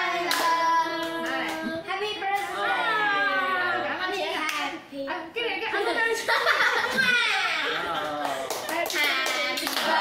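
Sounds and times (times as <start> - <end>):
people clapping: 0.0 - 2.8, 7.8 - 10.0
excited voices: 2.2 - 4.1.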